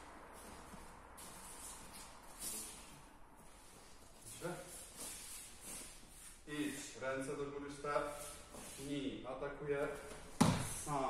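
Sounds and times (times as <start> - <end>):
soft movement on mats: 0.0 - 11.0.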